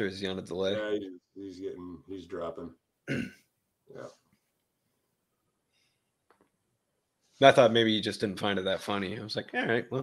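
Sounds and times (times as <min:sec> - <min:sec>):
throat clearing: 0:03.1 - 0:03.5.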